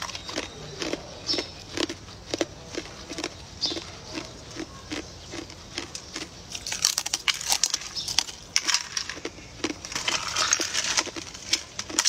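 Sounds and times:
brittle sheets crackling and snapping: 6.5s - 12.0s.

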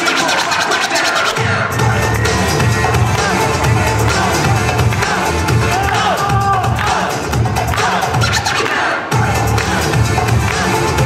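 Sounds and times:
turntable scratching: 0.0s - 1.8s, 7.8s - 9.1s
hip hop music: 0.0s - 11.0s
deep bass beat: 1.3s - 11.0s.

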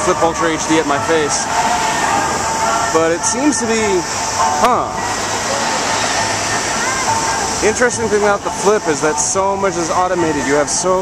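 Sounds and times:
cars passing close by: 0.0s - 11.0s
road traffic: 0.0s - 11.0s.

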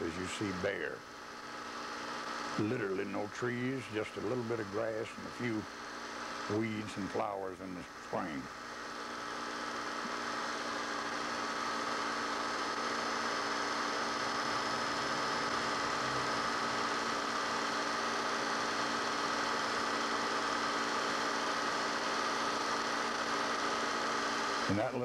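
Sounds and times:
electrical hum with hiss: 0.0s - 25.0s.

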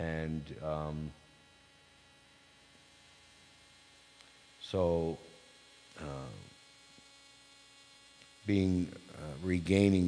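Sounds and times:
man saying uh: 0.0s - 1.1s, 6.0s - 6.5s, 8.5s - 10.0s
faint mains hum: 0.0s - 10.0s.

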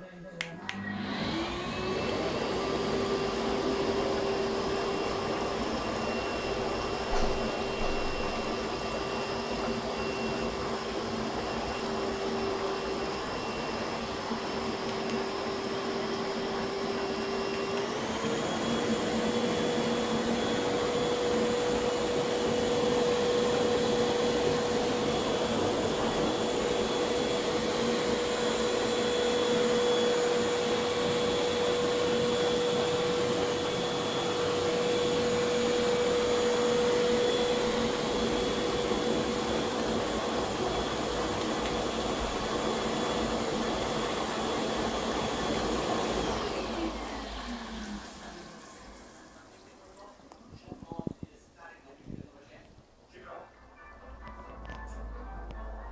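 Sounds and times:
air blower whining: 0.4s - 51.4s.

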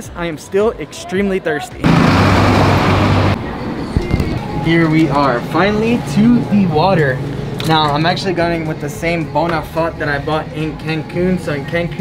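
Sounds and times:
bus passing close: 1.8s - 8.4s.

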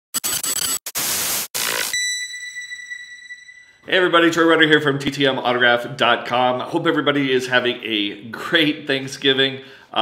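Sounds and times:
harsh static noise bursts: 0.1s - 2.0s
bright ringing tone: 1.9s - 3.9s.

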